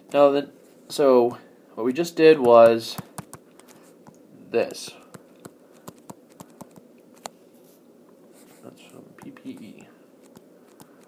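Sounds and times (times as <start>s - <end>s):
stylus tapping tablet screen: 2.4s - 4.2s, 5.1s - 7.3s, 9.2s - 11.0s.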